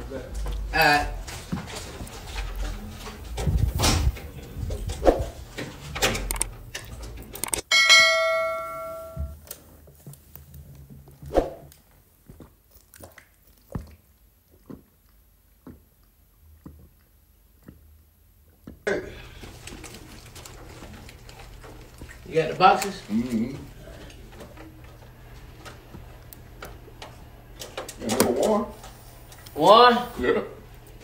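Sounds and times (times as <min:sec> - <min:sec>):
bell-like metallic ding: 0:07.7 - 0:09.3.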